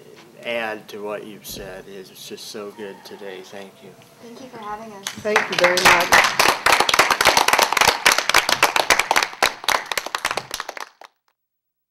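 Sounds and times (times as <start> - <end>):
small group clapping: 5.0 - 11.2.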